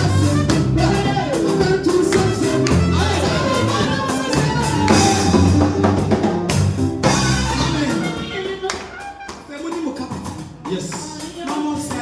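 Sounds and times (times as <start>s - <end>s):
live church music: 0.0s - 12.0s.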